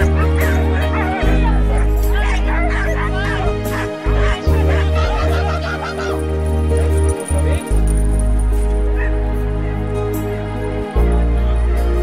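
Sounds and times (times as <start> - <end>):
dogs yelping and howling: 0.0 - 7.1
background music with bass: 0.0 - 12.0.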